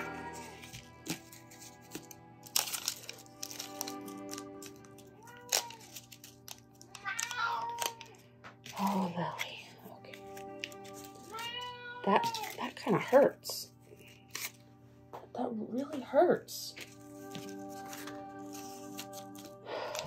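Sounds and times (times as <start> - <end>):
background music: 0.0 - 20.0
paper flowers tapping and rustling: 0.4 - 11.4, 16.8 - 20.0.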